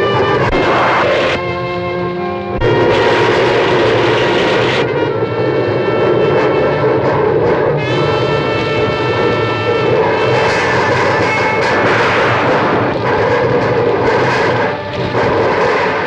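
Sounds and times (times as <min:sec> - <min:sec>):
low rumble: 0:00.0 - 0:16.0
sustained musical chords: 0:00.0 - 0:16.0
rain and wind: 0:02.3 - 0:16.0.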